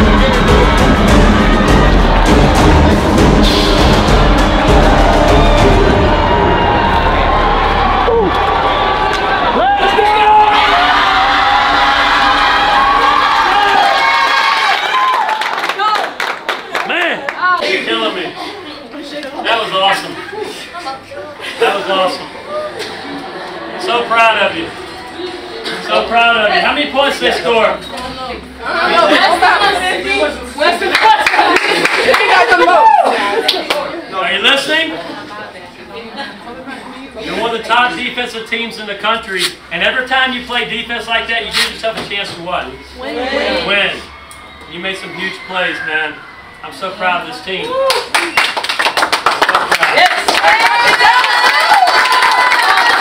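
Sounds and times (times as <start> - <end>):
players cheering and shouting: 0.0 - 16.2, 32.0 - 33.5, 42.8 - 48.2, 49.9 - 53.0
person whooping: 32.7 - 33.3, 47.6 - 48.4.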